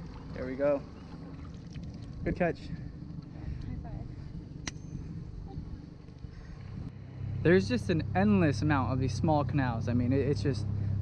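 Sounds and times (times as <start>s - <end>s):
outboard motor idling: 0.0s - 11.0s.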